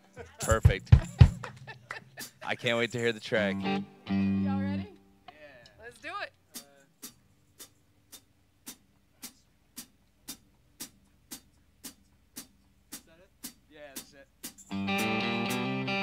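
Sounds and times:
rock band playing: 0:03.0 - 0:04.9, 0:14.7 - 0:16.0
sharp metronome clicks: 0:14.4 - 0:15.9.

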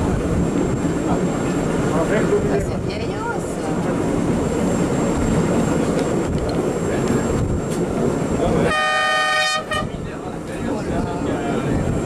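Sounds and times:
train wheels rumbling on rails: 0:00.0 - 0:12.0
train horn: 0:08.6 - 0:10.0.

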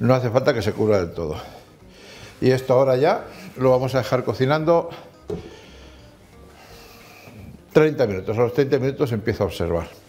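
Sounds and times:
glass lid knocking on pan: 0:05.3 - 0:05.6.

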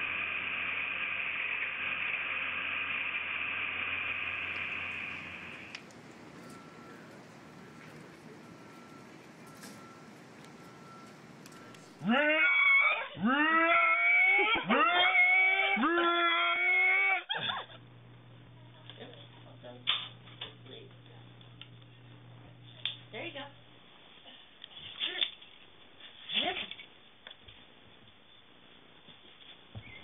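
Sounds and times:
low hum: 0:00.0 - 0:12.4, 0:17.4 - 0:23.9.

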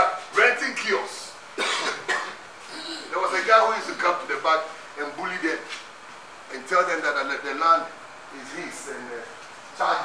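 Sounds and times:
man coughing: 0:01.6 - 0:03.1.

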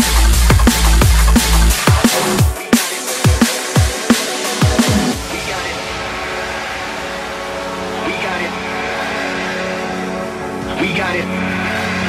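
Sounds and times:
held synth chords: 0:00.0 - 0:12.0
steady wash of noise: 0:05.1 - 0:12.0.

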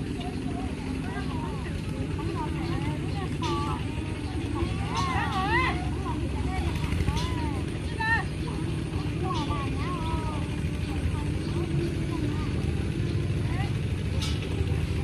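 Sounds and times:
small engine running: 0:00.0 - 0:15.0
voices calling and talking: 0:00.0 - 0:15.0.

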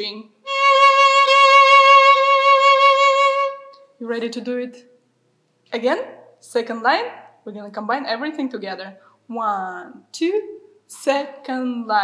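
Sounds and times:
violin bowed note with vibrato: 0:00.5 - 0:03.8.

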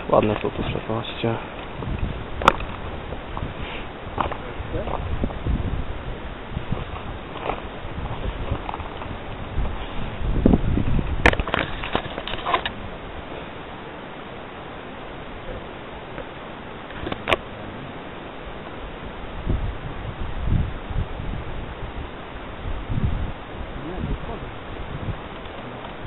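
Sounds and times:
steady hiss: 0:00.0 - 0:26.0
wind buffeting microphone: 0:00.0 - 0:26.0.

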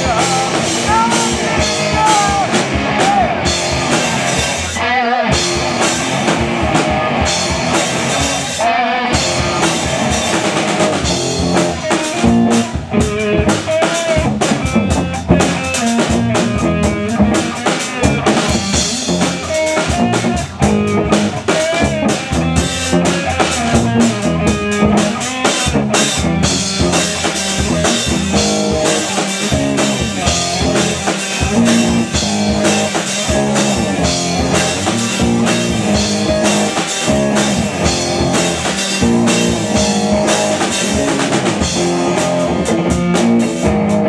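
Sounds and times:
distorted electric guitars: 0:00.0 - 0:44.0
drum kit beat: 0:00.0 - 0:44.0.

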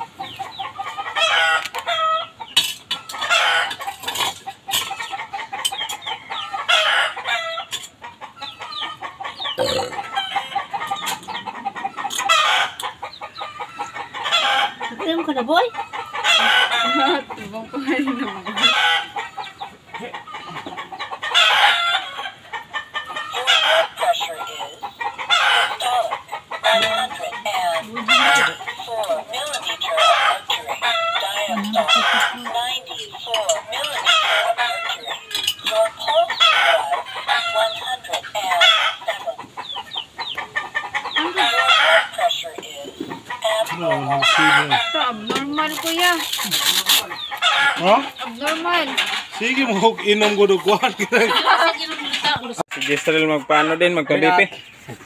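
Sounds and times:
roosters crowing: 0:00.0 - 0:52.6
chickens clucking: 0:00.0 - 0:55.0.

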